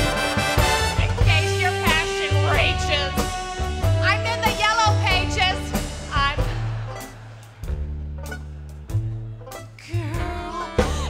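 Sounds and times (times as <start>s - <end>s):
orchestra playing swing music: 0.0s - 10.9s.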